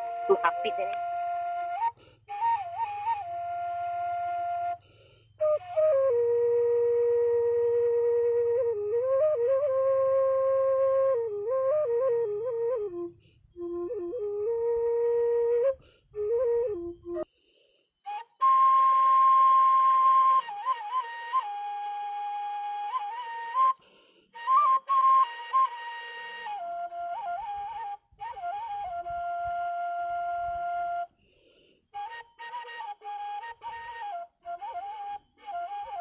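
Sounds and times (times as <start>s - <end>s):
flute melody: 0.0s - 17.3s, 18.0s - 31.3s, 31.9s - 36.0s.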